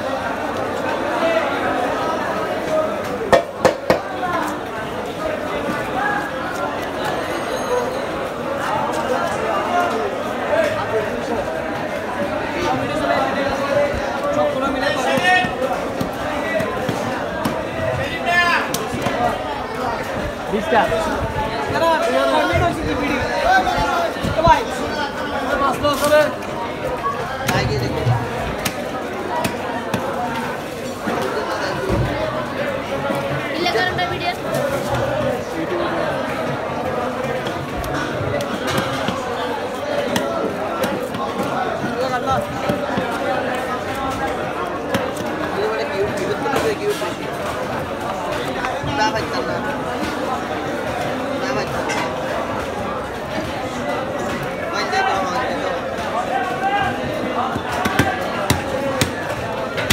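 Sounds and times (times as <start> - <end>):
market voices: 0.0 - 59.9
people talking: 0.0 - 59.9
sharp knocks: 3.3 - 4.1.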